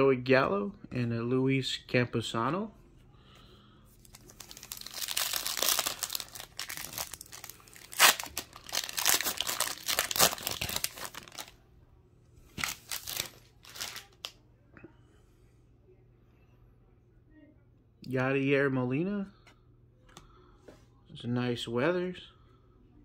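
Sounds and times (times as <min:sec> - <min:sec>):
foil wrapper tearing and crinkling: 0:04.0 - 0:11.6, 0:12.6 - 0:14.3.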